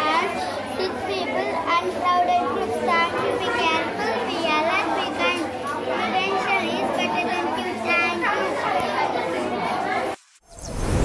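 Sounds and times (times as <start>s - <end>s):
young girl speaking: 0.0s - 9.1s.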